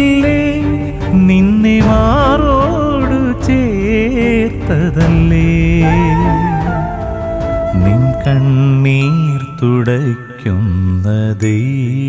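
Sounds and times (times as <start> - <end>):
man singing devotional song: 0.0 - 7.1, 7.7 - 12.0
light instrumental backing: 0.0 - 11.2.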